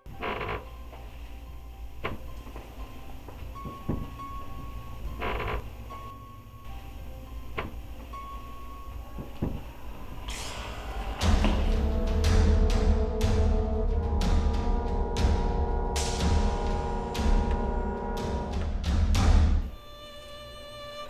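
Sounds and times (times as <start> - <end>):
creaks and knocks: 0.0 - 1.0, 2.0 - 6.2, 7.4 - 8.2, 9.1 - 9.8
low steady drone: 0.0 - 19.7.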